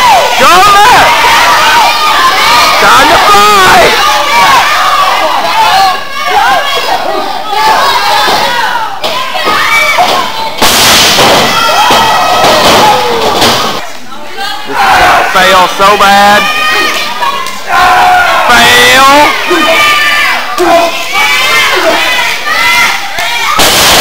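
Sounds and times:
crowd shouting and cheering: 0.0 - 24.0.

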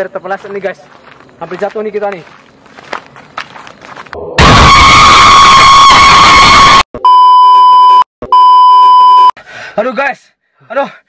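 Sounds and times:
test-tone beeps: 7.0 - 9.3.

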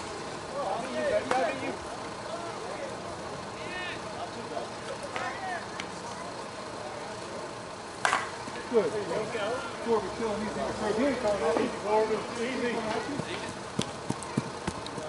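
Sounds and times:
distant voices calling out: 0.1 - 15.0
bat hitting ball: 8.0 - 8.4.

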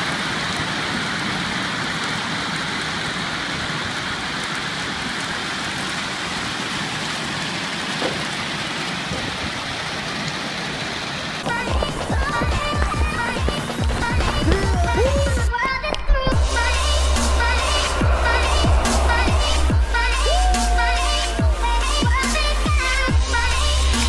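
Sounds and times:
electronic music with heavy beat: 11.4 - 24.0.

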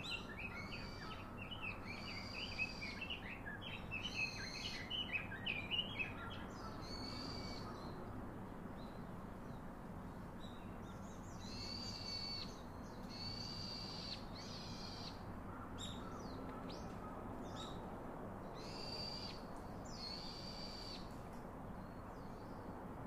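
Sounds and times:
faint outdoor background noise: 0.0 - 23.0.

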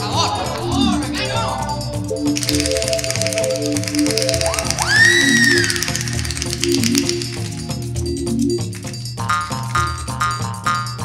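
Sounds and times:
keyboard music: 0.0 - 10.4
fast ticking rhythm: 0.1 - 11.0
swooping pitched tone: 0.4 - 8.6.

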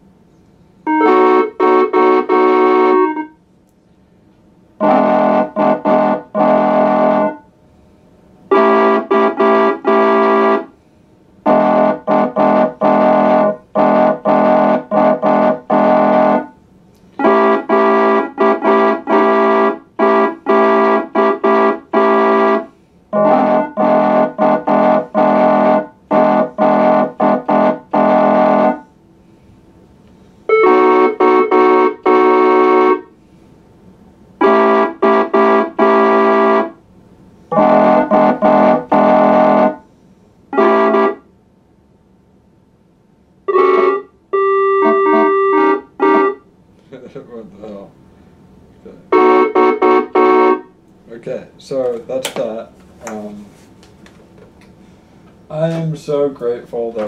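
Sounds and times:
organ chords on keyboard: 0.8 - 3.4, 4.7 - 7.5, 8.4 - 10.8, 11.4 - 28.9, 30.4 - 33.1, 34.3 - 36.9, 37.5 - 39.9, 40.5 - 41.2, 43.4 - 46.5, 49.0 - 50.8.

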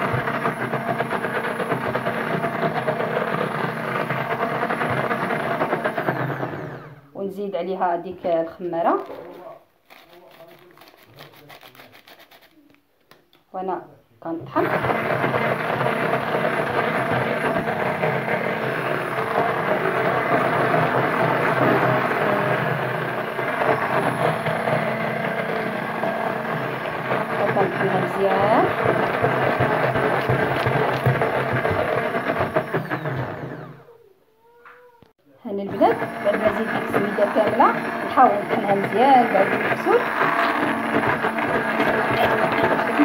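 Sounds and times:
immersion blender running: 0.0 - 7.1, 14.4 - 34.0, 35.5 - 43.0.

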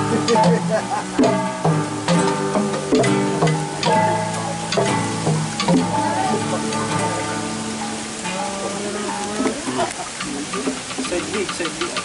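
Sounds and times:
acoustic guitar chords: 0.0 - 11.3
steady hiss: 0.0 - 12.0.

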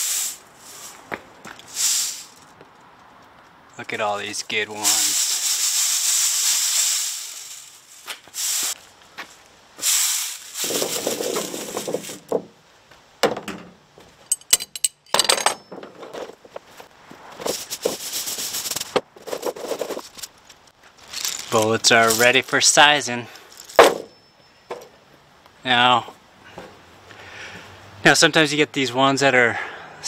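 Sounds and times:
bullets clinking: 14.3 - 15.9, 23.5 - 25.0
bullets rattling off wire mesh: 23.4 - 24.9.

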